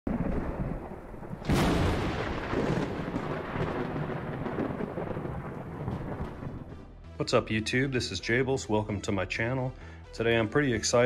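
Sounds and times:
thunder-like rumble and crack: 0.1 - 7.0.

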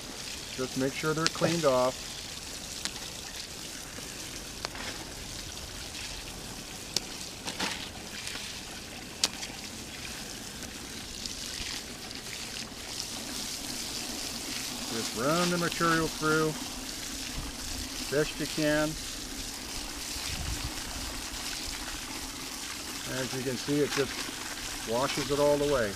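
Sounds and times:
water spraying onto wet gravel: 0.0 - 25.9.

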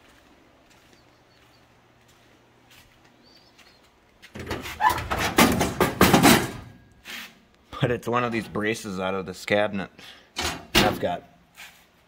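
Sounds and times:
metal drawer slides squealing: 4.4 - 5.6.

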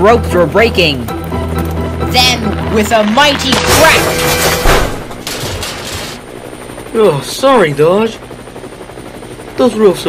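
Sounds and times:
toy engine crashing onto track: 3.2 - 6.2.

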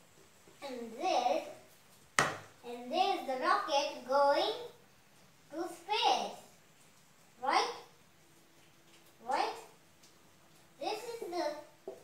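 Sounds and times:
young boy talking: 0.6 - 1.6, 2.6 - 4.8, 5.5 - 6.5, 7.4 - 7.9, 9.2 - 9.7, 10.8 - 11.8.

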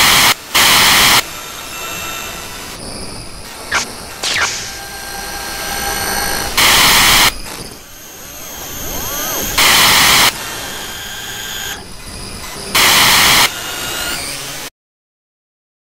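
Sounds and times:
droning ambience: 0.4 - 12.8
loud static bursts: 3.7 - 5.0, 6.3 - 7.4, 8.6 - 10.4, 12.8 - 13.6.

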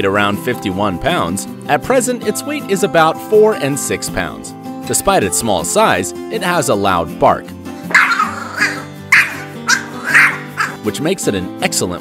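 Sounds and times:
background music: 0.0 - 12.0
small dog barking: 7.9 - 10.8.

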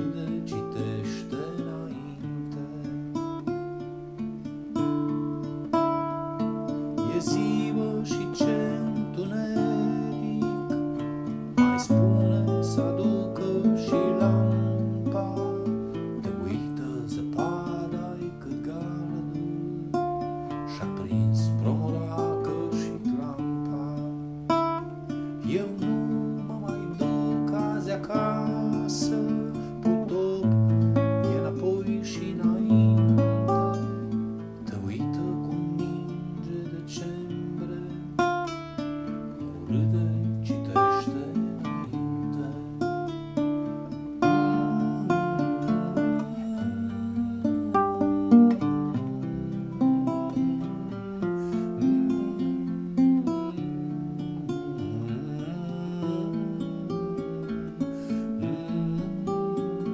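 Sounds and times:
acoustic guitar strumming chords: 0.0 - 59.9.

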